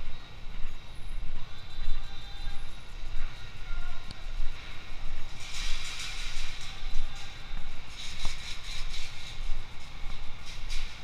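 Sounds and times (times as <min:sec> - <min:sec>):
traffic low rumble: 0:00.0 - 0:11.0
loud hissing rush: 0:01.8 - 0:11.0.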